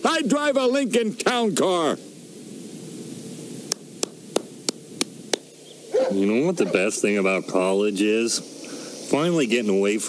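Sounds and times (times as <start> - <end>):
background hiss: 0.0 - 10.0
run of sharp clicks: 3.7 - 5.5.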